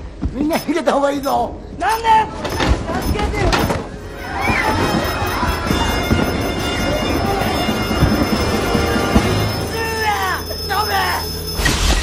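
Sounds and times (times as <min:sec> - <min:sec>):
teenagers screaming and shouting: 0:04.0 - 0:11.2
music: 0:04.0 - 0:11.6.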